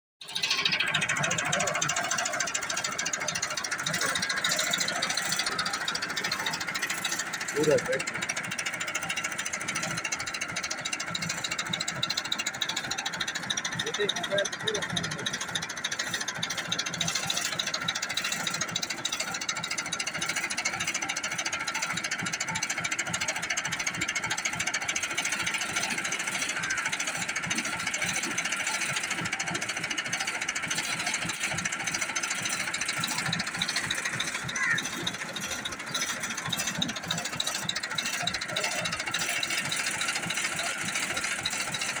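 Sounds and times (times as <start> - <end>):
tractor diesel engine idling: 0.2 - 42.0.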